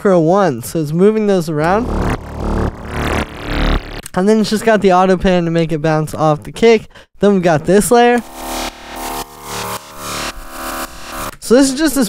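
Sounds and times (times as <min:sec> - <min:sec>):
synthesized bass: 0:01.3 - 0:05.0, 0:08.0 - 0:11.6.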